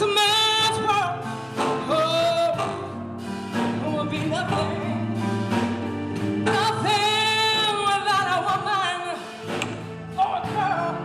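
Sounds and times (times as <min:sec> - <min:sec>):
woman singing: 0:00.0 - 0:03.1, 0:03.7 - 0:05.1, 0:06.4 - 0:09.4, 0:10.1 - 0:11.0.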